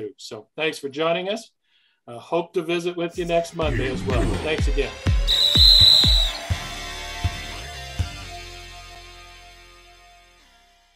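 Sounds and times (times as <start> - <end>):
high steady tone: 5.3 - 6.5.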